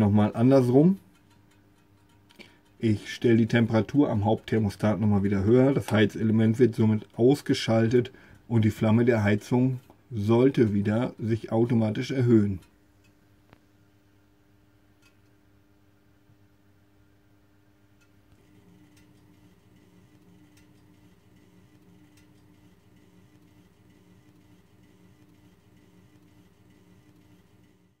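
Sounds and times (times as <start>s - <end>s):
faint ticks: 1.0s - 2.8s
gas burner hum: 16.3s - 28.0s.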